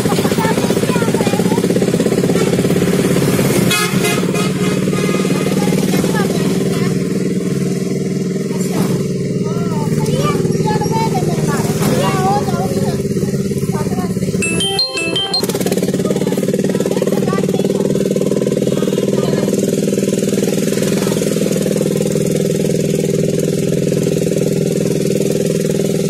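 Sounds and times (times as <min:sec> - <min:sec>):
vehicle engine drone: 0:00.0 - 0:14.4, 0:15.2 - 0:26.0
motorcycles passing: 0:00.0 - 0:26.0
vehicle horn: 0:03.6 - 0:05.6.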